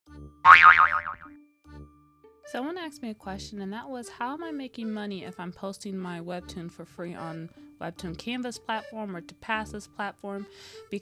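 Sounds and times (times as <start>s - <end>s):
cartoon boing twang: 0.5s - 1.3s.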